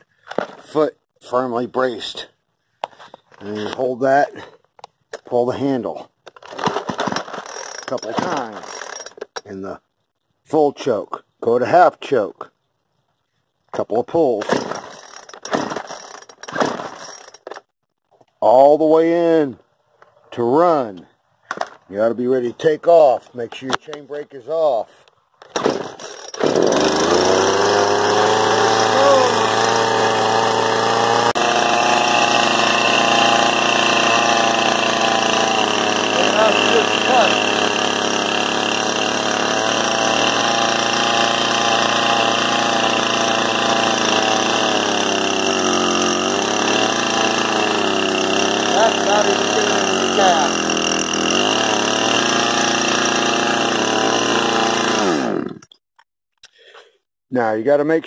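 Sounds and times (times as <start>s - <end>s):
chainsaw starting and running: 0.0s - 0.9s, 2.9s - 4.6s, 6.3s - 9.6s, 14.2s - 17.7s, 25.4s - 55.8s.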